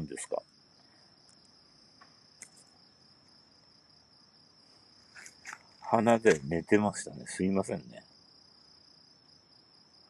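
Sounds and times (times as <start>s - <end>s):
high-pitched insect trill: 0.0s - 10.0s
faint click: 1.3s - 2.7s.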